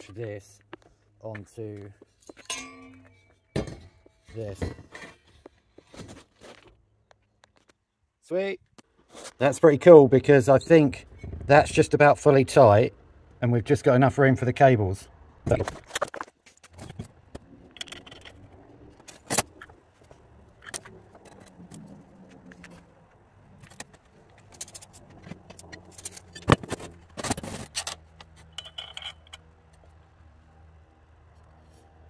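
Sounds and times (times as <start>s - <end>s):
metal tools clinking on workbench: 2.3s - 4.8s, 27.6s - 29.4s.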